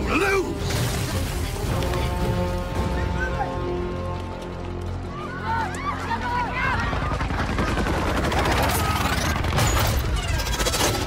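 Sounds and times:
rapid gunfire: 7.0s - 11.0s.

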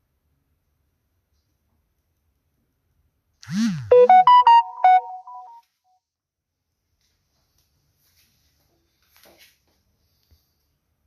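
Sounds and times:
electronic notification jingle: 3.9s - 5.6s.

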